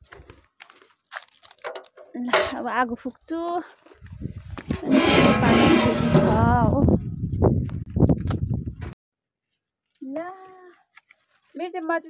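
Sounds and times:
low wind rumble on microphone: 0:04.0 - 0:09.0
cow lowing: 0:04.8 - 0:06.7.

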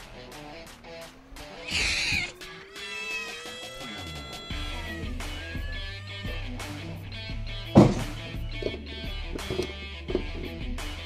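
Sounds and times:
background music with held notes: 0:00.0 - 0:11.0
small dog yelping: 0:01.4 - 0:06.2.

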